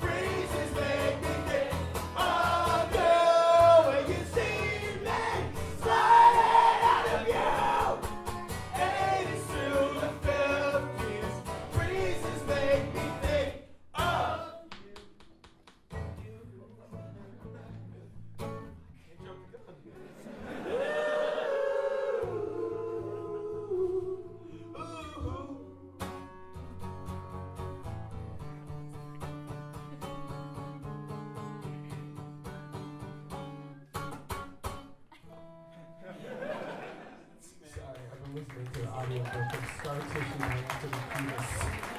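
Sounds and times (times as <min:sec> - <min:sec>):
man singing: 0:00.0 - 0:08.1, 0:08.7 - 0:14.7, 0:22.3 - 0:26.2
strummed acoustic guitar: 0:00.0 - 0:14.4, 0:26.0 - 0:36.0.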